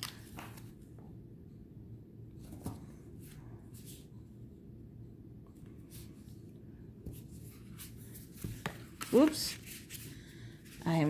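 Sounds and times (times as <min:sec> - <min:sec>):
cards rustling: 0:00.0 - 0:00.8, 0:07.6 - 0:11.0.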